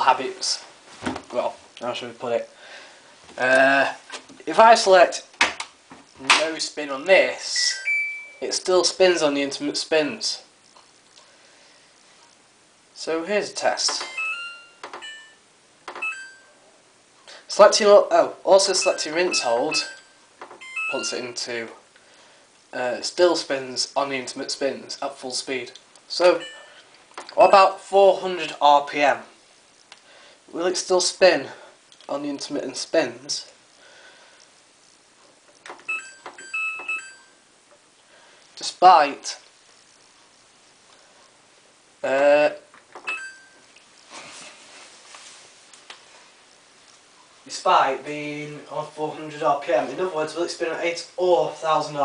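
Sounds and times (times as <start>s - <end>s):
electronic beeps: 7.6s - 8.4s, 14.0s - 16.6s, 18.8s - 21.3s, 26.4s - 26.8s, 35.9s - 37.4s, 43.0s - 43.6s
short electronic beep: 7.6s - 8.4s, 18.8s - 21.2s, 26.4s - 26.8s.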